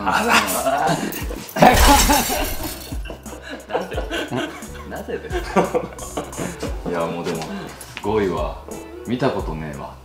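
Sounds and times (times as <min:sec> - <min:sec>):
men laughing hard: 0:00.0 - 0:06.9.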